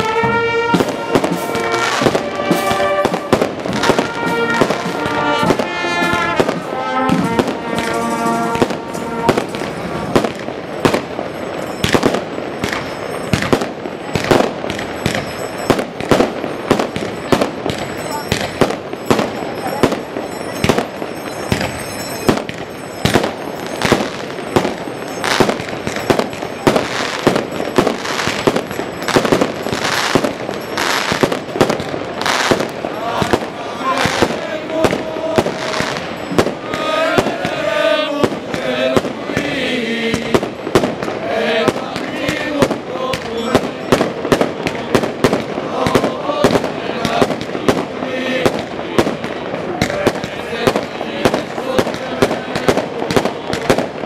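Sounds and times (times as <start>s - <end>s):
firecrackers cracking: 0.0s - 54.0s
street band with brass and drums: 0.0s - 54.0s.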